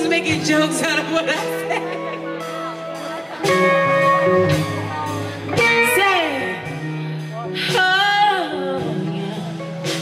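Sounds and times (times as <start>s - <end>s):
electric guitar chords ringing: 0.0s - 10.0s
live band playing: 0.0s - 10.0s.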